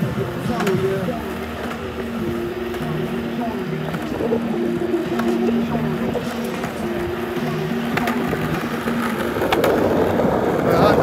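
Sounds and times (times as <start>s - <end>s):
music with held low notes: 0.0s - 11.0s
skateboard wheels rolling on concrete: 0.0s - 11.0s.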